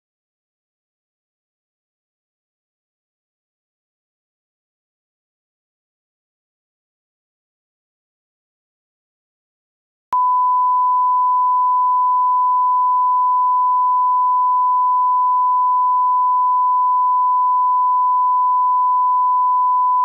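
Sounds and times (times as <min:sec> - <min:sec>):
pure reference tone: 0:10.2 - 0:20.0.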